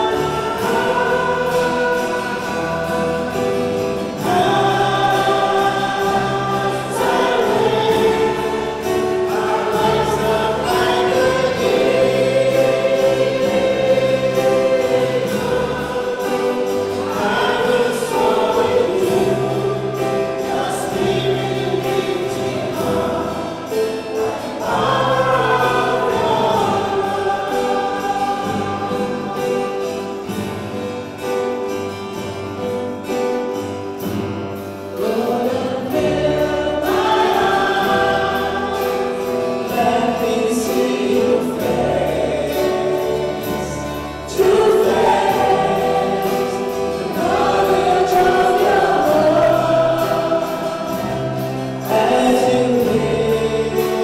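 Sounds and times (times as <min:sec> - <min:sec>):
choir singing a hymn: 0:00.0 - 0:54.0
keyboard accompaniment: 0:00.0 - 0:54.0.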